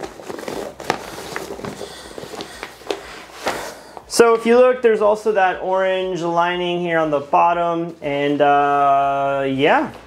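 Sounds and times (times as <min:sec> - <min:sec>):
backpack fabric rustling and crackling: 0:00.0 - 0:04.6.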